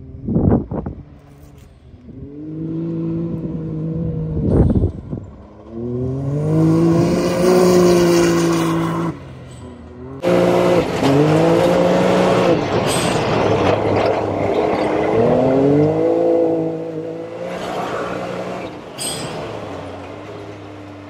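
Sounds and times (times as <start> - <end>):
engine revving: 0.0 - 21.0.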